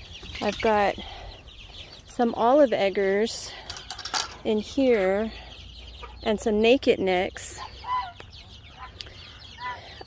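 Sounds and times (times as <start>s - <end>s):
chicks peeping and cheeping: 0.0s - 10.0s.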